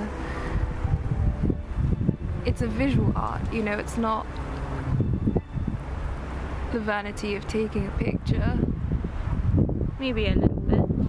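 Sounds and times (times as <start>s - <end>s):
wind gusts on microphone: 0.0s - 11.0s.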